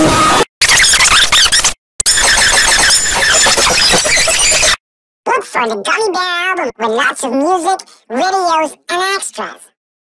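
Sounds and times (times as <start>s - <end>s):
harsh distorted garbled audio: 0.0s - 9.4s.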